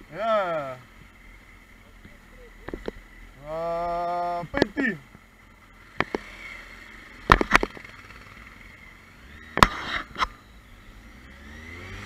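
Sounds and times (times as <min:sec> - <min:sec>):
motorcycle engine idling: 0:00.0 - 0:11.2.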